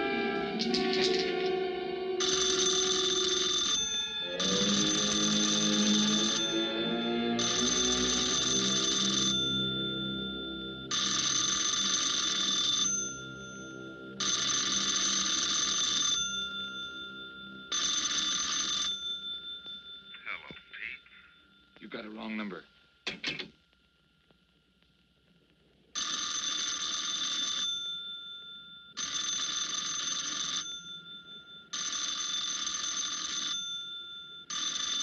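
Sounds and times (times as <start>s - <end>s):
orchestral film score: 0.0s - 10.9s
telephone bell ringing: 2.2s - 21.8s, 26.0s - 35.0s.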